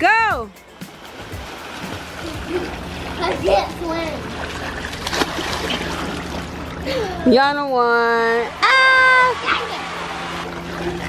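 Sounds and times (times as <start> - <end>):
water splashing from swimmers: 0.7 - 7.3, 8.6 - 11.0
sharp splash: 4.2 - 6.5
children shouting: 8.6 - 10.5.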